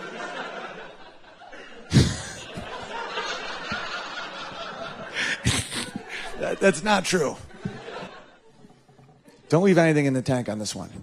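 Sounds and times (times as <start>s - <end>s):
audience laughter: 0.0s - 9.8s
man snickering into microphone: 1.9s - 2.8s, 5.2s - 6.4s.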